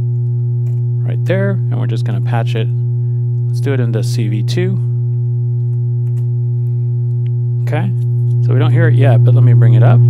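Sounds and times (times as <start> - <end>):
low sine-wave tone: 0.0 - 10.0.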